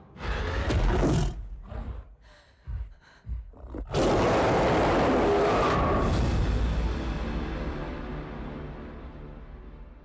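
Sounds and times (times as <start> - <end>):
monster roar: 3.9 - 6.2.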